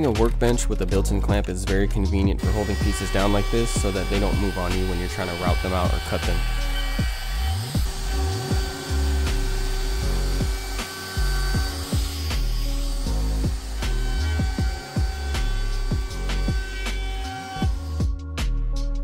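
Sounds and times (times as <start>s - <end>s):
background music with steady beat: 0.0s - 19.0s
router cutting wood: 2.4s - 18.2s.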